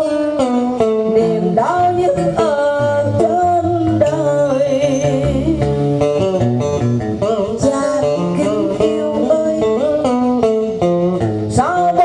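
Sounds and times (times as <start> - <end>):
plucked string instrument melody: 0.0 - 12.0.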